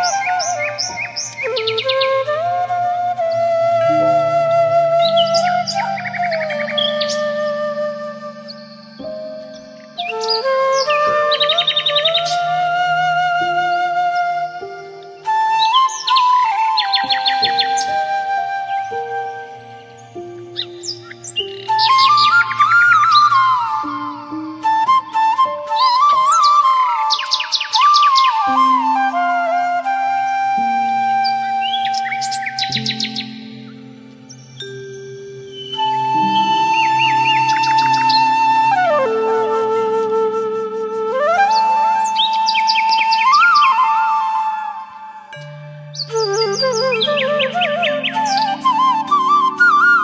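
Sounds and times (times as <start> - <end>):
birds chirping: 0.0 - 50.0
slow flute melody: 0.0 - 50.0.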